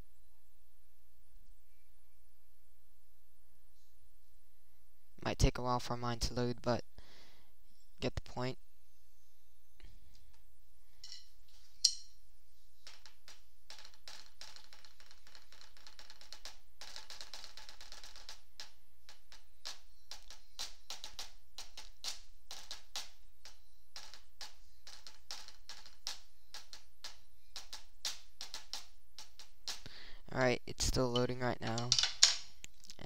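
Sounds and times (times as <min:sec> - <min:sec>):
rapid clicking and tapping: 0:12.8 - 0:30.0.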